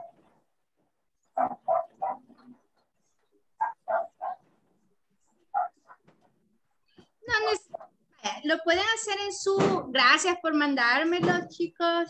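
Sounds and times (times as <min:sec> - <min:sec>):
dog barking: 0:00.0 - 0:00.2, 0:01.3 - 0:02.4, 0:03.6 - 0:04.5, 0:05.5 - 0:06.0.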